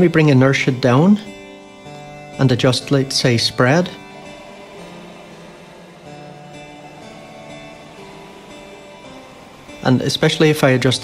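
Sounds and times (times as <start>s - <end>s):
plucked guitar with heavy reverb: 0.3s - 11.0s.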